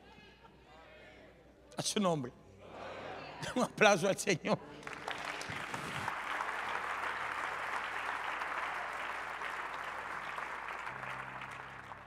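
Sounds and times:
congregation applauding: 4.8 - 12.0.

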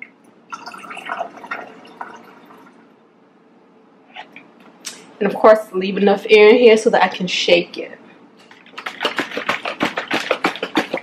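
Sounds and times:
liquid sloshing in shaken jug: 8.4 - 11.0.

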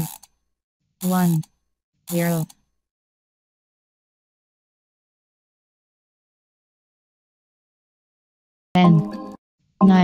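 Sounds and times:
mechanical ratchet clicking: 0.0 - 0.4.

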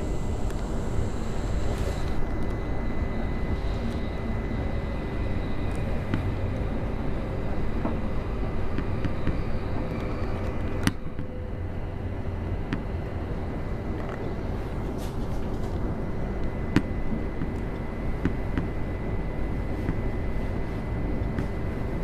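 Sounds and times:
faint high whine: 0.0 - 22.0
wheels rumbling on rail: 0.0 - 22.0.

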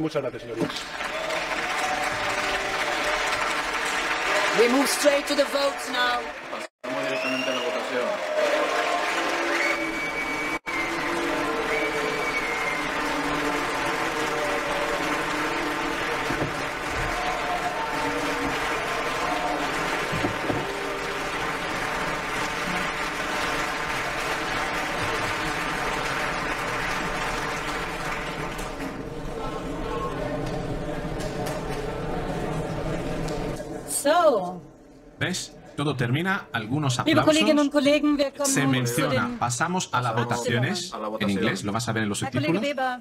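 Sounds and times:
crowd applauding: 0.6 - 33.7.

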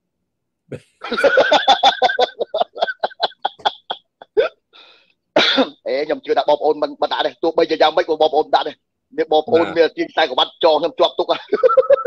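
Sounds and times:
man laughing: 1.0 - 4.6
man talking: 5.9 - 11.4.

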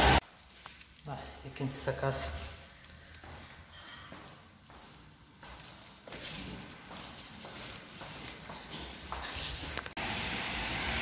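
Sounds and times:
footsteps on stairs: 3.2 - 10.0.

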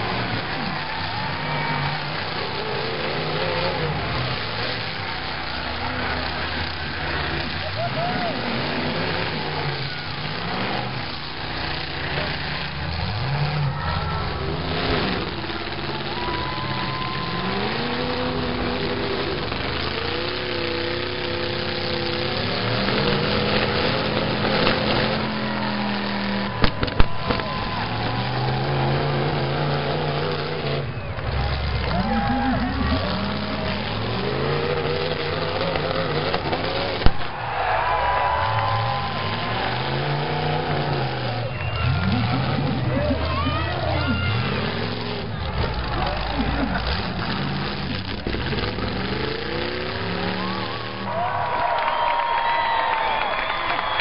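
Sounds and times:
arena noise: 0.0 - 54.0
car engines revving: 0.0 - 54.0
sharp bangs: 22.6 - 29.3, 35.3 - 40.2.

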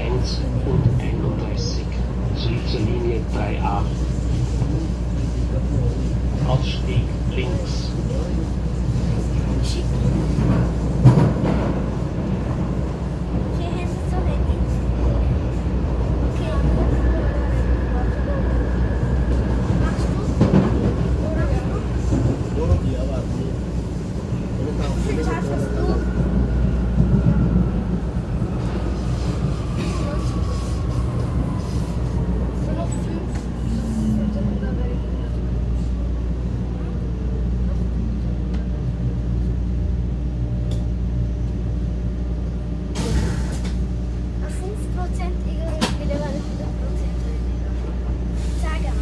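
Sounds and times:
train rumble with track noise: 0.0 - 49.0.

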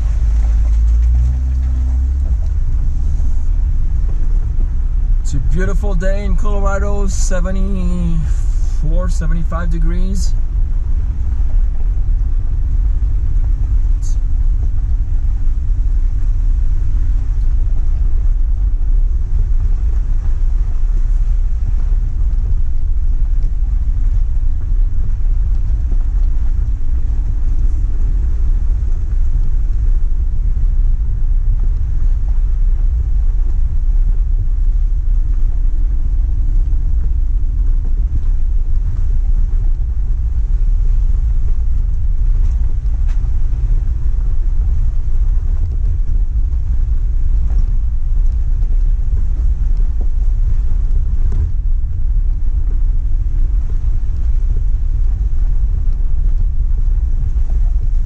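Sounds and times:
wind buffeting microphone: 0.0 - 6.8, 10.4 - 58.0
engine and tyres on gravel: 0.0 - 58.0
faint engine hum: 0.0 - 58.0.

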